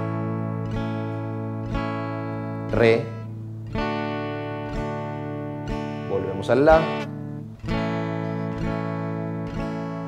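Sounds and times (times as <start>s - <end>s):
guitar chord strummed: 0.0s - 10.0s.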